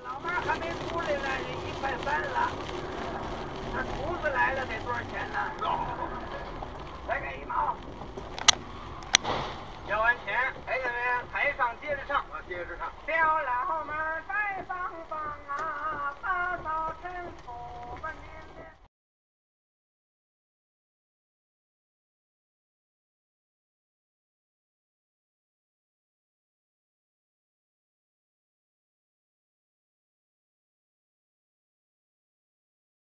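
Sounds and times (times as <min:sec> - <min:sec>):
voices talking in a car: 0:00.0 - 0:18.8
car crash bangs: 0:02.7 - 0:13.0.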